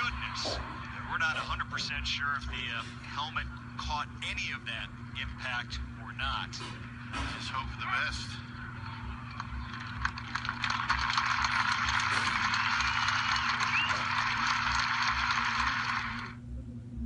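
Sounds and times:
low steady hum: 0.0s - 17.0s
crowd applauding: 8.7s - 16.4s.

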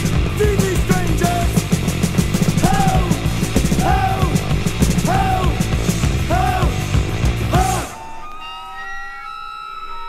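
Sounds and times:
sustained electronic tones chord: 6.9s - 10.0s.

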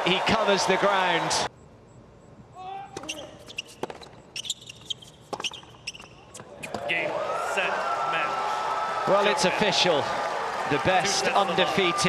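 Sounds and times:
crowd cheering: 0.0s - 1.5s, 6.4s - 12.0s
tennis shoes squeaking: 2.6s - 7.0s
racket striking tennis ball: 3.0s - 4.2s, 4.8s - 6.8s
tennis ball bouncing: 3.0s - 6.9s.

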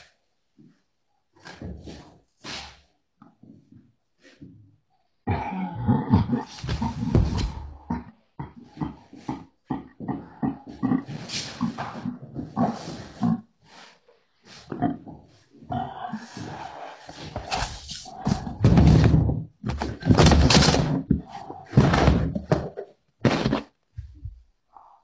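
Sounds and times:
grunts: 5.2s - 13.5s, 14.6s - 19.2s
people vocalizing without words: 14.8s - 17.3s.

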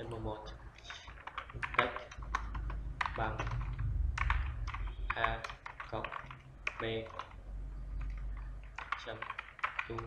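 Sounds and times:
keyboard typing: 0.7s - 10.0s.

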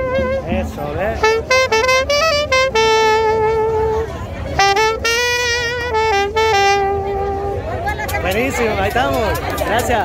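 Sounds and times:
solo saxophone melody: 0.0s - 8.0s.

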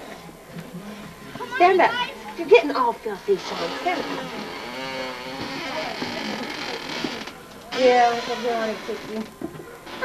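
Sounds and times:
indistinct voices talking: 0.0s - 10.0s.

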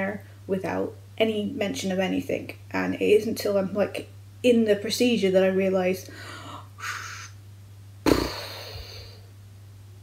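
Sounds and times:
woman breathing in: 6.1s - 7.3s
puff of breath out: 8.1s - 9.2s.

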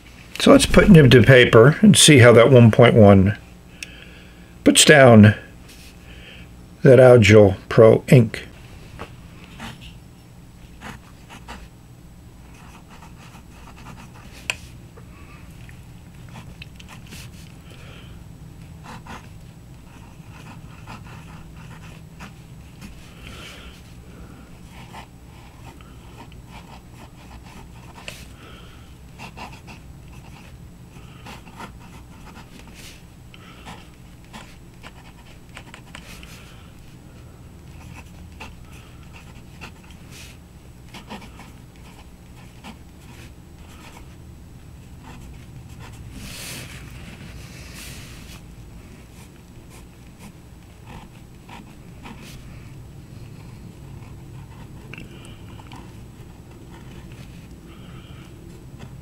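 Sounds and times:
low steady hum: 0.0s - 59.0s
fountain pen scratching on paper: 9.6s - 9.9s, 10.6s - 11.7s, 12.4s - 14.6s, 16.3s - 17.5s, 18.8s - 23.0s, 24.6s - 28.3s, 29.2s - 33.0s, 33.6s - 36.4s, 37.7s - 44.2s, 45.0s - 52.7s, 53.3s - 57.4s.

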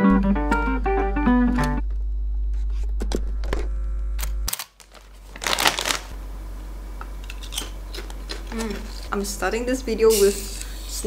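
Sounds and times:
low hum: 1.1s - 9.5s
foil chip bag rustling: 4.6s - 6.2s.

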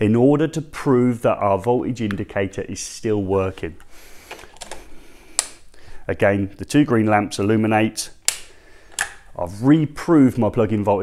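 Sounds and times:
handling sounds: 3.7s - 5.8s, 8.2s - 9.4s
plug click: 8.2s - 9.2s.

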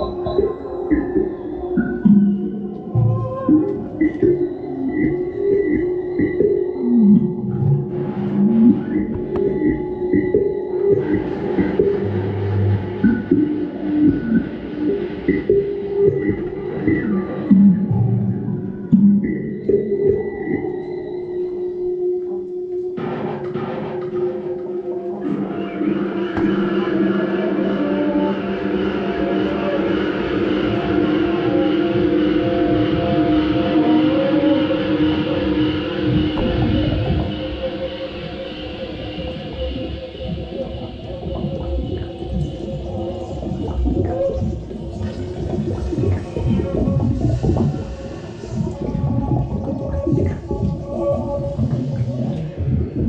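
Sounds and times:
droning electronics: 0.0s - 53.0s.

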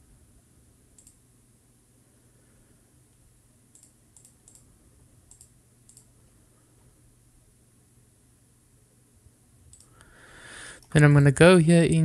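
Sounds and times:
computer mouse clicks: 0.9s - 1.2s, 3.7s - 4.7s, 5.3s - 6.1s, 9.7s - 10.1s
man speaking: 10.9s - 12.0s.

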